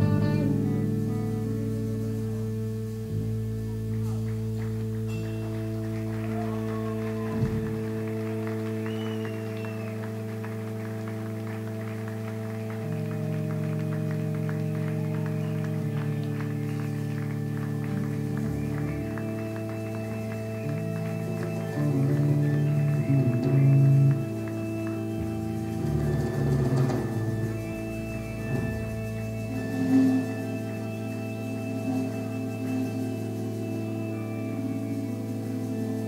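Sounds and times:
electric guitars droning: 0.0s - 36.0s.

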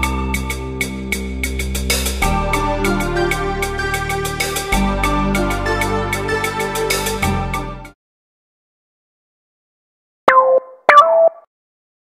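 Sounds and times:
cartoon sound effects: 10.3s - 11.4s.

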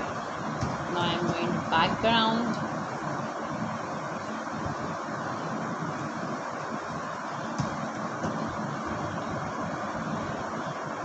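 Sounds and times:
hiss-like background noise: 0.0s - 11.0s.

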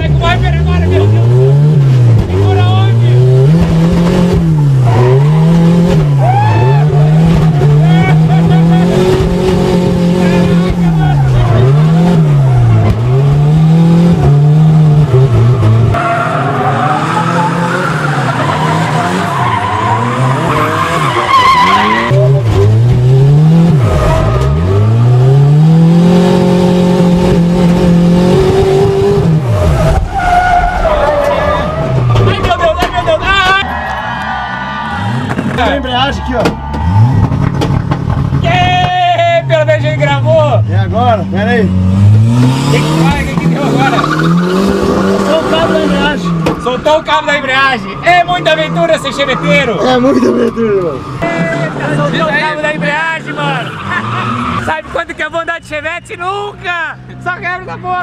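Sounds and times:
car engine revving hard: 0.0s - 30.3s, 41.4s - 47.0s
tyres squealing: 15.9s - 22.4s, 42.9s - 56.7s.

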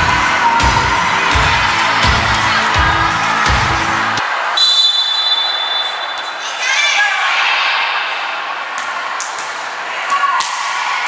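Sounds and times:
music with thumping beat: 0.0s - 4.2s
referee whistle blast: 4.6s - 6.4s.

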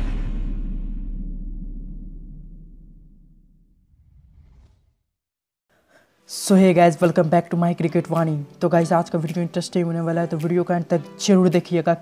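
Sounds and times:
faint breathy whoosh: 3.9s - 5.0s.

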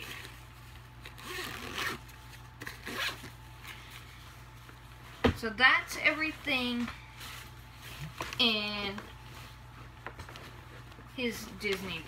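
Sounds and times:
zipper on fabric bag: 1.1s - 3.2s.

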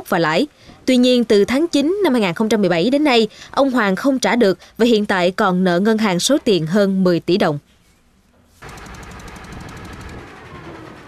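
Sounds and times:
boat engine chugging: 8.6s - 11.0s.

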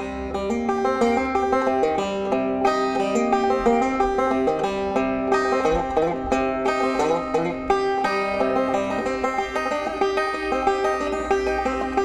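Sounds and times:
bluegrass banjo picking: 0.0s - 12.0s.

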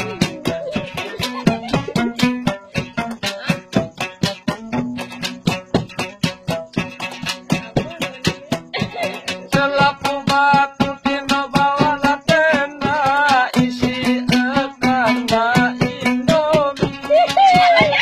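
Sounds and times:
man singing: 0.0s - 5.2s, 7.5s - 18.0s
plucked lute: 0.0s - 18.0s.

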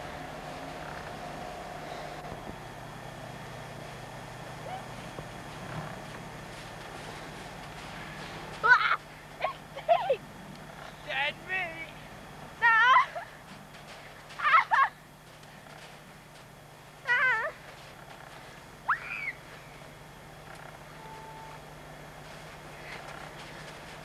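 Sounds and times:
steady low hum: 0.0s - 24.0s
people shrieking with laughter: 14.4s - 15.0s, 18.9s - 19.4s.

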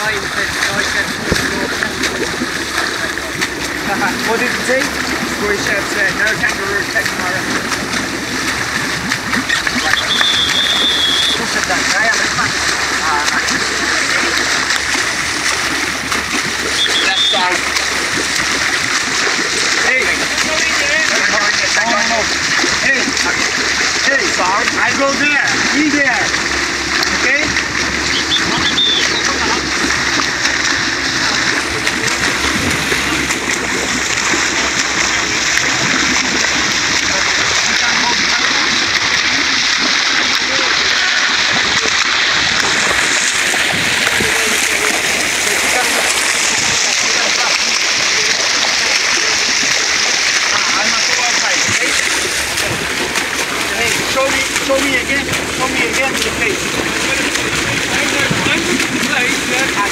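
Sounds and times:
low steady hum: 0.0s - 59.9s
sea rushing along a boat: 0.0s - 59.9s
swimmer splashing: 0.0s - 59.9s
voices calling out: 0.0s - 59.9s.

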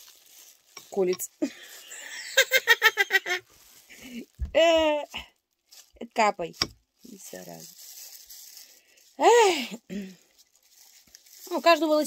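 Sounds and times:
plastic gloves rustling: 0.0s - 12.0s.

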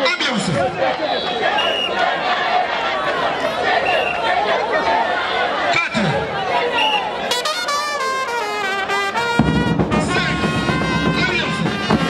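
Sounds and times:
crowd chattering and shouting: 0.0s - 12.0s.

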